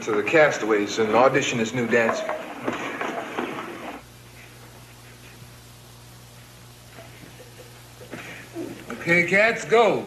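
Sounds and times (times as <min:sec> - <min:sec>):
man speaking: 0:08.9 - 0:10.0.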